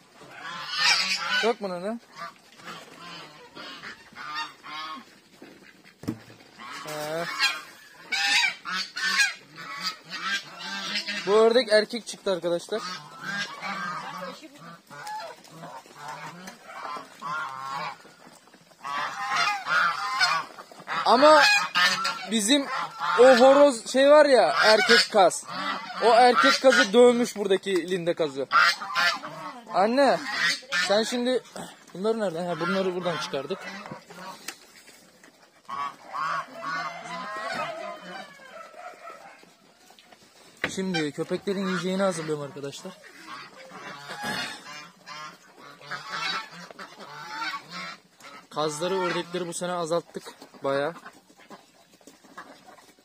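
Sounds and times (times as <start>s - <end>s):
geese honking: 0.0s - 53.0s.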